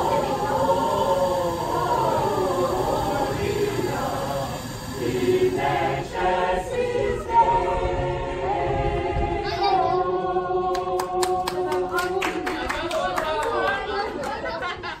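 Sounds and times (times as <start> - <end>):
voices chattering: 0.0 - 7.4
choir holding a chord: 0.0 - 12.5
scattered handclaps: 10.7 - 14.5.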